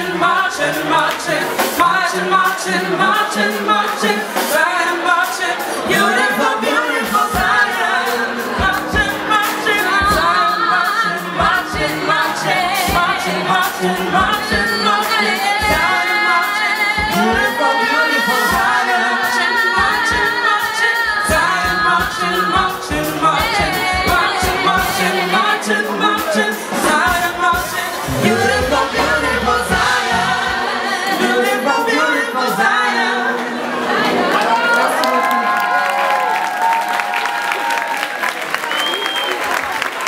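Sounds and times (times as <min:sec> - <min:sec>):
band drums: 0:00.0 - 0:33.0
female backing singers harmonizing: 0:00.0 - 0:35.2
female lead singer: 0:00.0 - 0:35.3.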